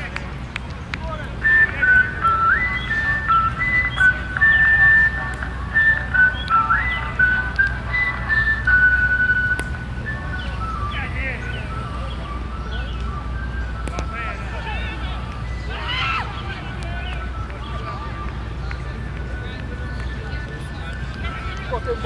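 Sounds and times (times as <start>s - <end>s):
person whistling a tune: 1.4s - 16.2s.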